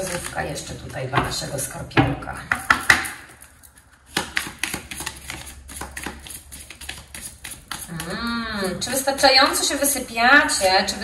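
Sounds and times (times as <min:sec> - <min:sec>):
cards being shuffled: 0:02.8 - 0:08.8.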